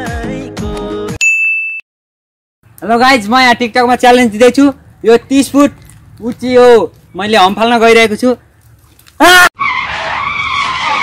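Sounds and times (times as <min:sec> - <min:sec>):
song with singing voice: 0:00.0 - 0:01.2.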